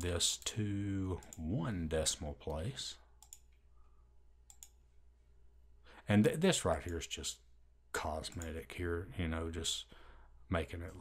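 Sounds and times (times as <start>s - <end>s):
computer mouse clicks: 1.2s - 1.5s, 3.2s - 3.6s, 4.4s - 4.8s.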